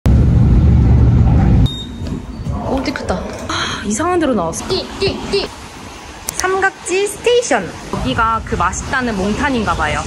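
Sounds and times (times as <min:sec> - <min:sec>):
subway train rumble: 0:00.0 - 0:10.0.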